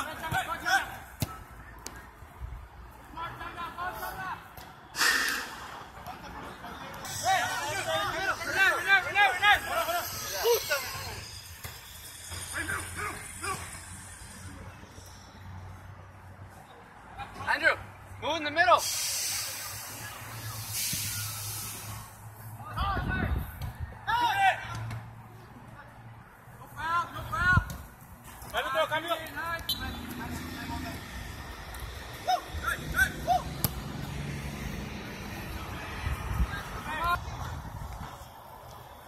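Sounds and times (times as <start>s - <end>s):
steady background noise: 0.0s - 39.0s
hissing noise: 18.8s - 22.2s.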